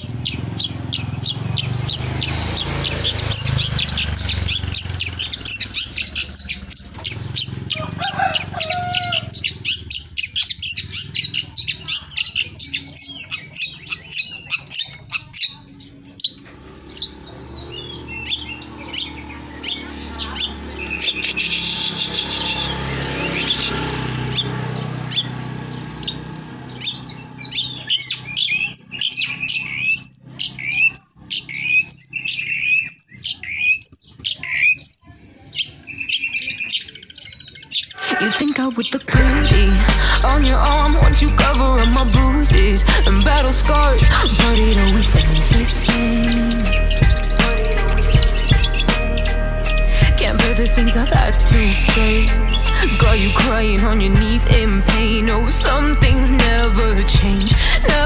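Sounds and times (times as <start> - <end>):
rush of background noise: 0.0 - 32.8
songbird chirping and whistling: 0.0 - 58.0.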